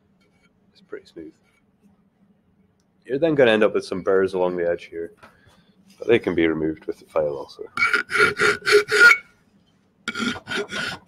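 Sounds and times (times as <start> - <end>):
hand file scraping metal: 7.8 - 9.3, 10.1 - 11.0.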